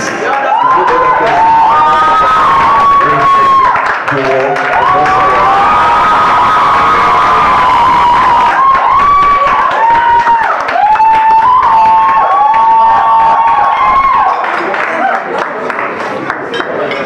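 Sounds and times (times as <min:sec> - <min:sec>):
audience cheering: 0:00.0 - 0:15.7.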